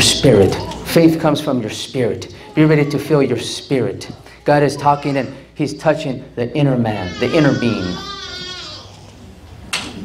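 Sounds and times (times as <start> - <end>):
man's wavering voice: 1.6 - 8.1.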